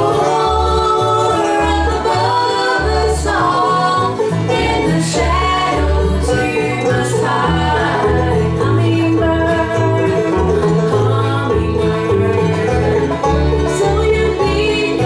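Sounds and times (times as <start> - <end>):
acoustic guitar: 0.0 - 15.0
banjo: 0.0 - 15.0
fiddle: 0.0 - 15.0
upright bass: 0.0 - 15.0.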